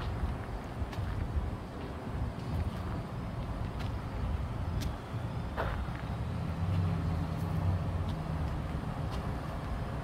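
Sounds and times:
road traffic engine rumble: 0.0s - 10.0s.

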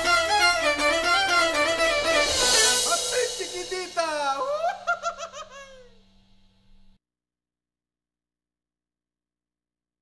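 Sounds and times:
person laughing: 4.4s - 6.0s.

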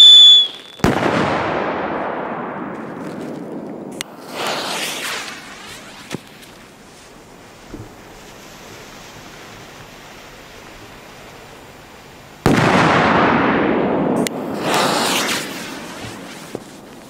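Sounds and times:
low outdoor background: 0.5s - 17.0s.

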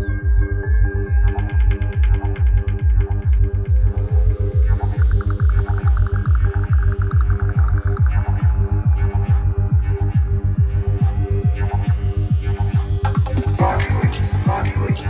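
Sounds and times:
psytrance music: 0.0s - 15.0s.

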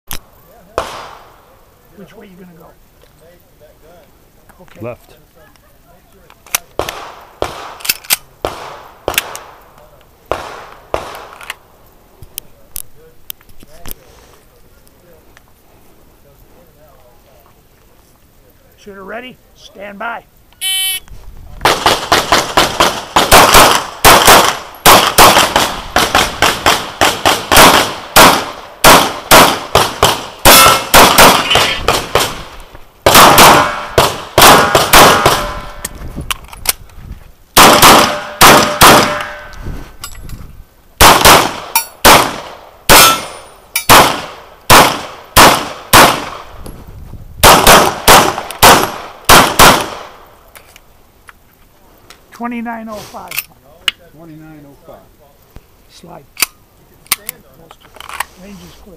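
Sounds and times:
pistol shots: 0.8s - 1.3s, 6.8s - 9.6s, 10.3s - 11.4s, 21.6s - 35.8s, 37.6s - 39.4s, 41.0s - 46.5s, 47.4s - 50.2s.

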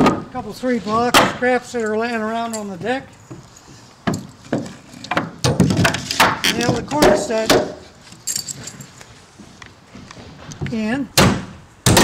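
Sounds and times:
hammer driving nails into wood: 11.2s - 12.0s.

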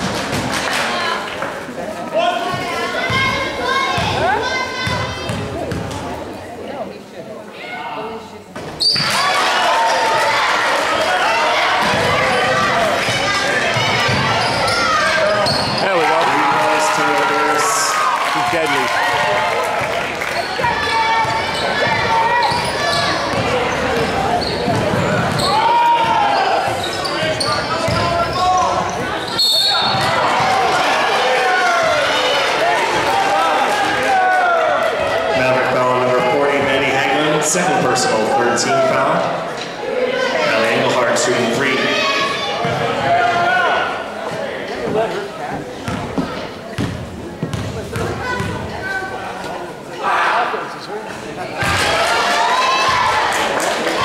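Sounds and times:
basketball bouncing on hardwood: 45.9s - 48.6s.

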